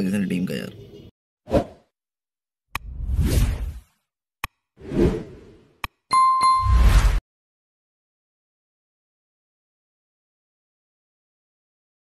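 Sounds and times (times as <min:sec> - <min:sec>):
whoosh sound effects: 0:06.6 - 0:07.2.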